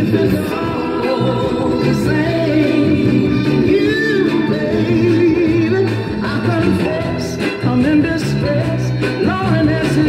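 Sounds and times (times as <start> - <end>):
soul song on vinyl record: 0.0 - 10.0.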